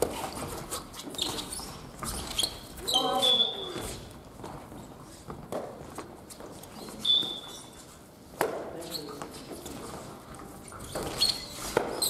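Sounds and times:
footsteps on wooden gym floor: 0.0 - 7.7.

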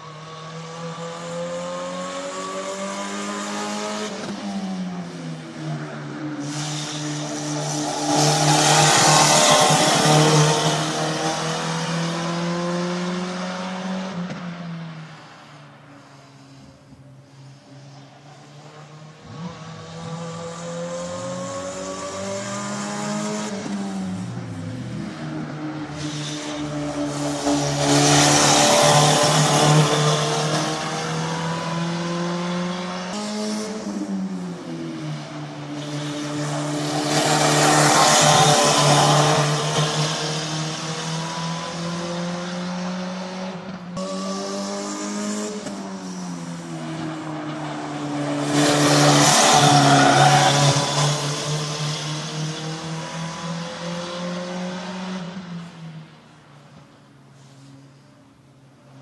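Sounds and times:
race car engine revving: 5.9 - 14.4, 18.9 - 55.4.

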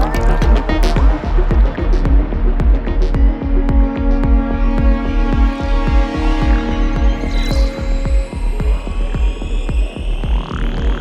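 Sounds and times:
psytrance music: 0.0 - 11.0.

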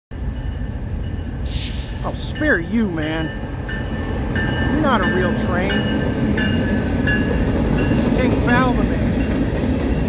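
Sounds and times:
diesel freight train rumble: 0.1 - 10.0.

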